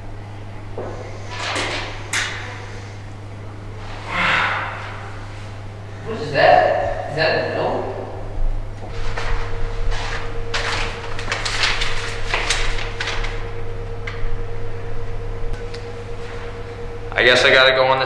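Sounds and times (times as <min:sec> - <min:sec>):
steady hum: 0:00.0 - 0:18.0
paper rustling and crinkling: 0:08.9 - 0:13.5.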